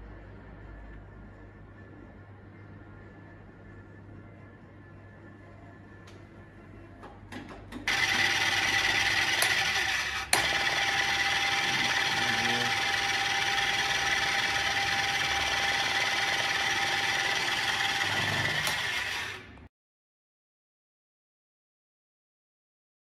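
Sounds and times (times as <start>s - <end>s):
machine whirring with a whine: 7.9s - 19.7s.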